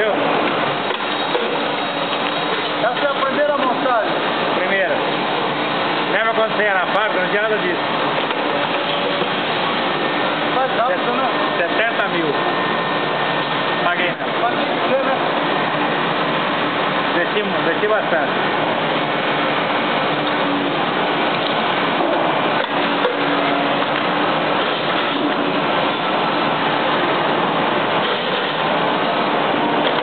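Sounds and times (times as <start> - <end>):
machinery humming: 0.0 - 30.0.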